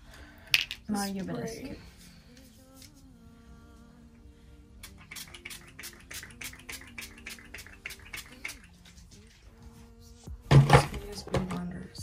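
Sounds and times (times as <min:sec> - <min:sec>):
faint background music: 0:00.0 - 0:12.0
spray bottle hissing spritzes: 0:04.8 - 0:08.8.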